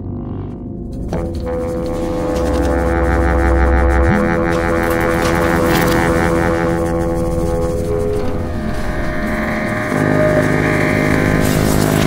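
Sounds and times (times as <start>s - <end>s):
electronic drone with held tones: 0.0s - 12.0s
rumbling low texture: 0.0s - 12.0s.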